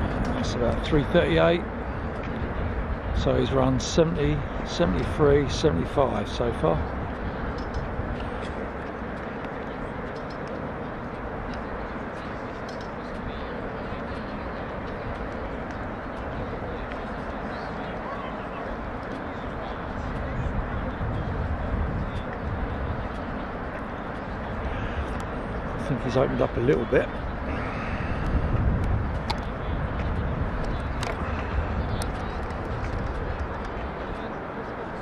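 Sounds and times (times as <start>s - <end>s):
distant voices: 0.0s - 35.0s.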